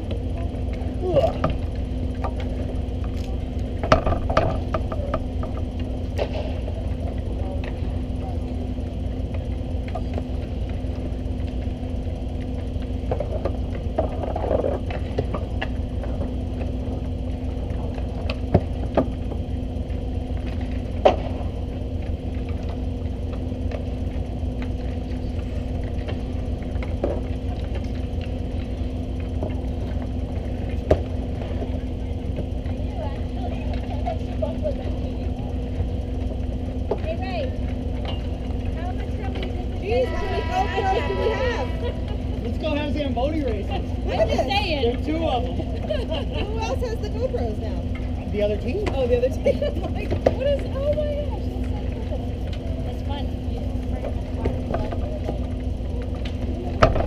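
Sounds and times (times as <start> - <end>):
constant hum: 0.0 - 57.0
faint shouts: 39.9 - 41.9.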